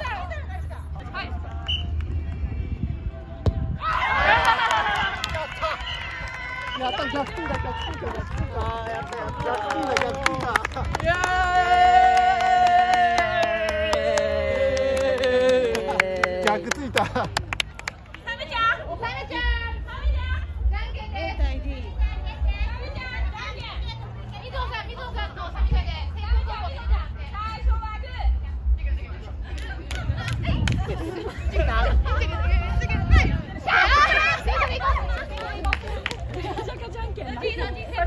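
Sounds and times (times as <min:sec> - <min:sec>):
lively chatter of voices: 0:00.0 - 0:03.9, 0:04.9 - 0:38.0
people cheering and shouting: 0:03.8 - 0:16.9, 0:32.4 - 0:35.6.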